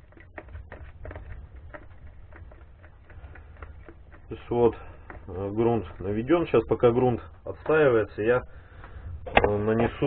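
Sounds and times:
metal stirrer scraping plastic bucket: 0.0s - 8.4s.

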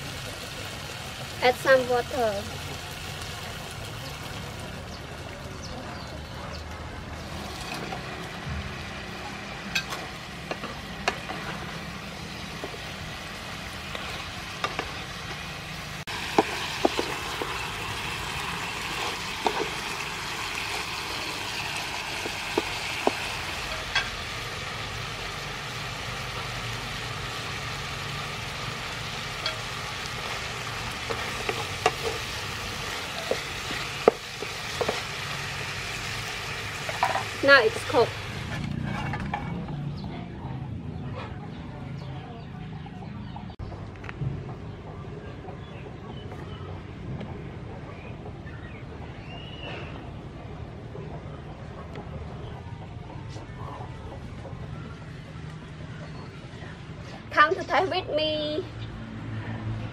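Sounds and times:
fish sizzling in a pan: 0.0s - 5.6s, 7.1s - 38.6s.

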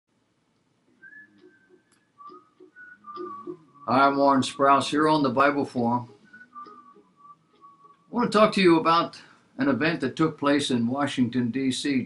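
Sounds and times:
person whistling short notes: 1.0s - 4.2s, 6.2s - 8.1s.

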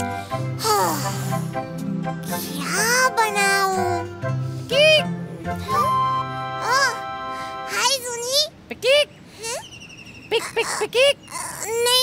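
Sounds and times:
high-pitched puppet voice: 2.3s - 4.1s, 4.7s - 12.0s.

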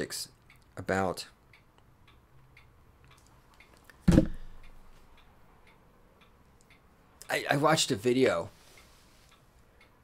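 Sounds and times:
faint regular ticking: 0.0s - 10.0s
loud thump: 4.1s - 4.4s.

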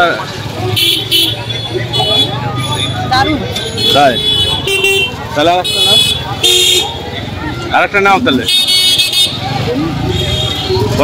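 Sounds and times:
market crowd voices: 0.0s - 11.0s.

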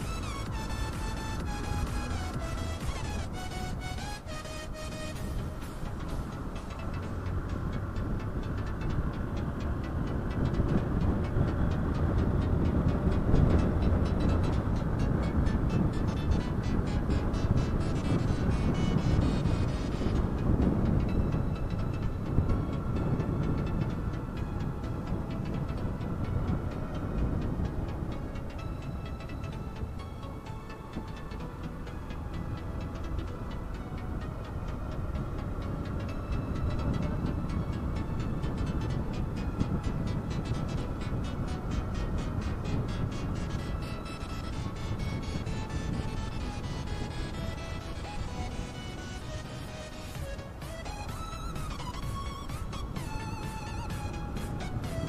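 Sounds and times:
wind rushing over microphone: 0.0s - 55.0s.

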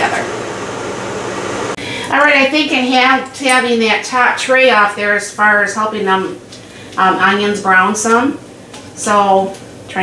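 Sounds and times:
convection fan running: 0.0s - 10.0s.

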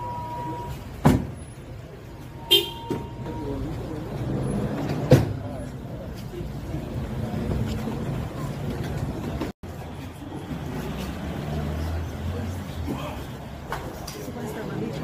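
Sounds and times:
vehicle noise: 0.0s - 15.0s
short horn toot: 2.4s - 3.3s.

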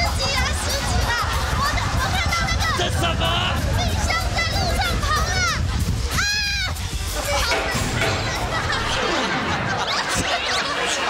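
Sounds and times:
wind rumble on microphone: 0.0s - 7.4s.

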